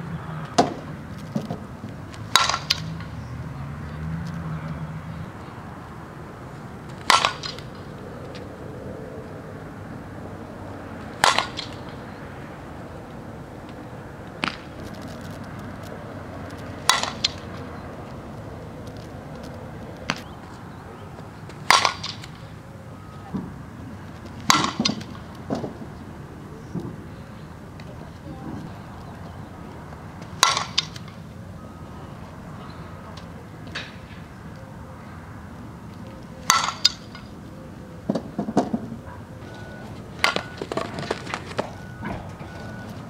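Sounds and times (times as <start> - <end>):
metal bat pinging ball: 2.3 - 3.1, 7.0 - 7.9, 11.2 - 12.1, 16.8 - 17.5, 21.6 - 22.4, 24.4 - 25.3, 30.4 - 31.2, 36.4 - 37.3.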